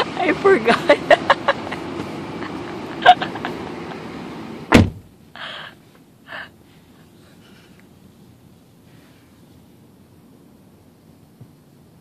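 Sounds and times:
car door thump: 0:04.7 - 0:05.1.

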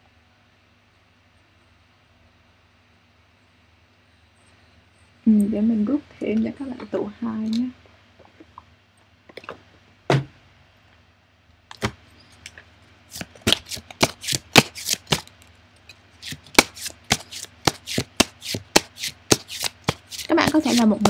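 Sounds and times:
sharp card slaps: 0:13.1 - 0:15.3, 0:16.2 - 0:20.8
cards being shuffled: 0:13.1 - 0:15.5, 0:16.2 - 0:21.0
card taps: 0:13.2 - 0:15.3.

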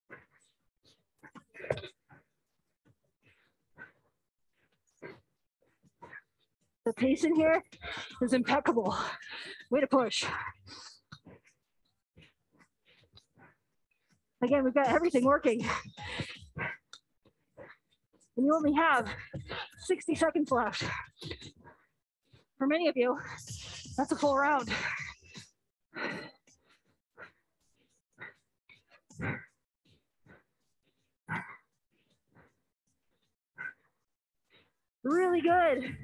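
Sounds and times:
woman breathing hard: 0:15.6 - 0:16.9, 0:24.7 - 0:32.5.

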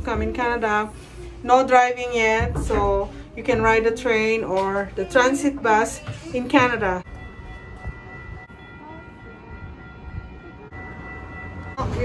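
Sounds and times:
train rumble: 0:00.0 - 0:12.0.

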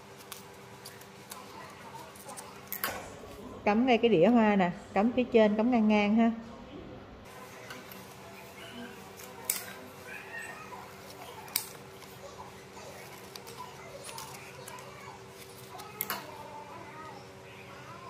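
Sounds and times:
scissors snipping leaves: 0:00.2 - 0:02.9, 0:09.2 - 0:09.8, 0:11.0 - 0:12.1.

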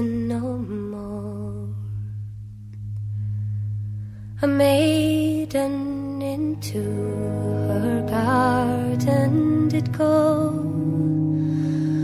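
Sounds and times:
low instrumental drone: 0:00.0 - 0:12.0.

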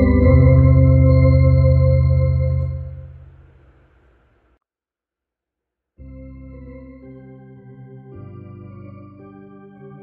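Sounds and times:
electronic organ playing: 0:00.0 - 0:03.3, 0:06.0 - 0:10.0.

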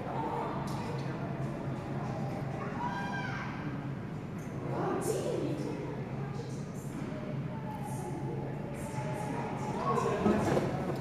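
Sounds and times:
indistinct voices echoing in arena: 0:00.0 - 0:11.0.

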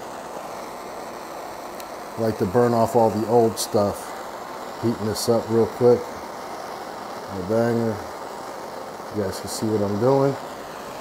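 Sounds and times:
torch flame hissing: 0:00.0 - 0:11.0.

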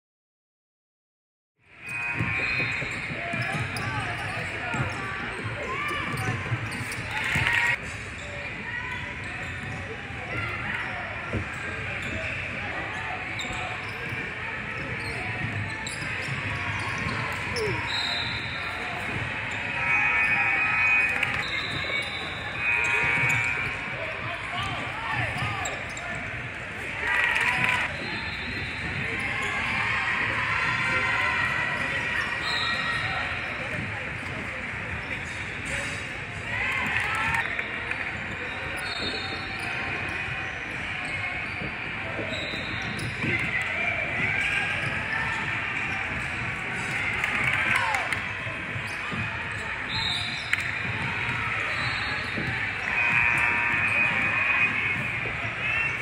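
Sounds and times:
basketball bouncing on court: 0:01.8 - 0:07.8, 0:13.3 - 0:19.6, 0:21.0 - 0:24.0
sneakers squeaking: 0:01.8 - 0:56.0.

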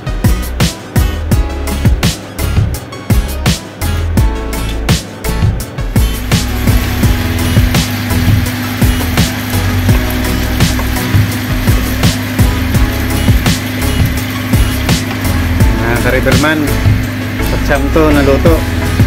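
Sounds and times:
background music with steady beat: 0:00.0 - 0:19.0.

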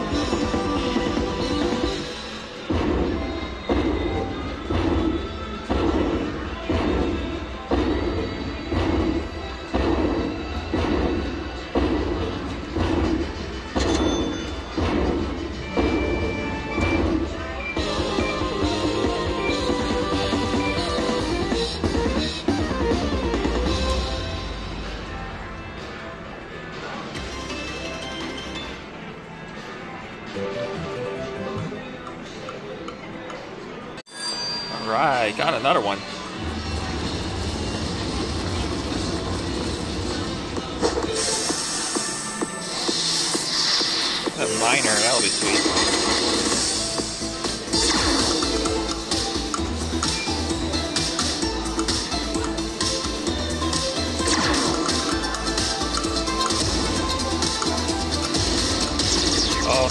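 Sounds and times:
slot machine celebration music: 0:00.0 - 0:29.3, 0:30.2 - 0:32.0, 0:34.1 - 0:40.5, 0:41.1 - 0:59.9.

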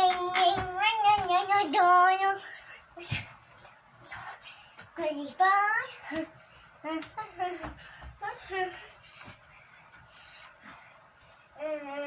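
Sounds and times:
child's feet thumping on floor: 0:00.0 - 0:01.6.

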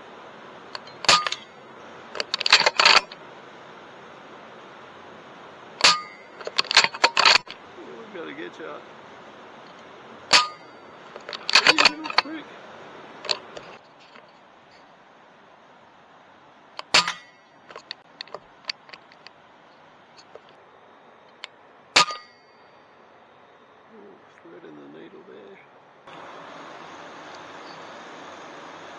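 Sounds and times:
metallic clang and ring: 0:00.8 - 0:01.6, 0:02.2 - 0:03.2, 0:05.8 - 0:07.6, 0:10.3 - 0:12.4, 0:16.8 - 0:17.9, 0:22.0 - 0:22.9
brief metallic ring: 0:05.8 - 0:06.5, 0:10.3 - 0:11.0, 0:22.0 - 0:22.7.

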